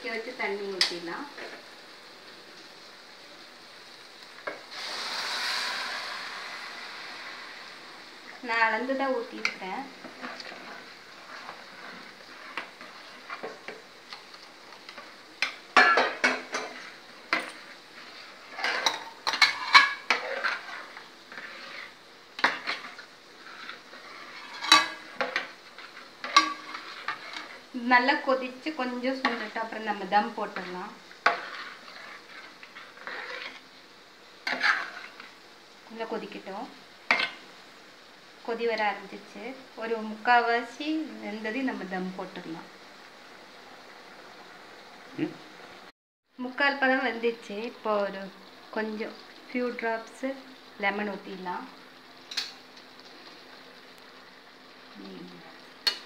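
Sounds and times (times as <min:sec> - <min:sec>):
ladle stirring liquid in pot: 0:09.4 - 0:27.7, 0:30.6 - 0:33.7, 0:34.4 - 0:35.3
metal utensils clinking on pot: 0:24.4 - 0:25.4.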